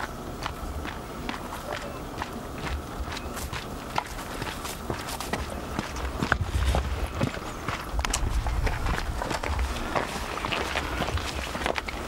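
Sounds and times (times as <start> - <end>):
footsteps crunching on dirt: 0.0 - 12.0
low rumble: 6.0 - 11.8.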